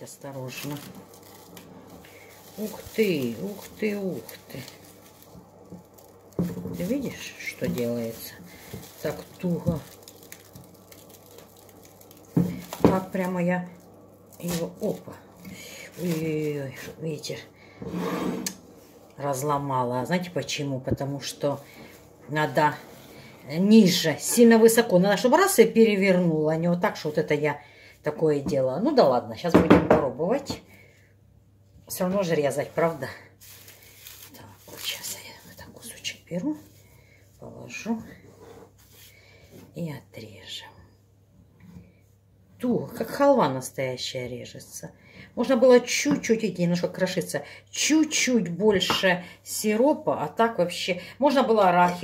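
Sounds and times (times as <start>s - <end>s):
woman speaking: 0.0s - 1.1s, 2.4s - 4.8s, 6.7s - 10.0s, 12.5s - 13.8s, 14.4s - 17.5s, 19.2s - 30.6s, 31.9s - 33.3s, 34.3s - 36.7s, 37.4s - 38.2s, 39.7s - 40.9s, 42.6s - 52.0s
plastic cling film crinkling: 0.0s - 17.7s, 18.4s - 25.0s, 32.0s - 39.2s.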